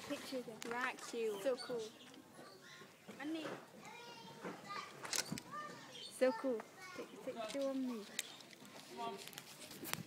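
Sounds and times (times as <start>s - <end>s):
distant children talking and playing: 0.0s - 10.0s.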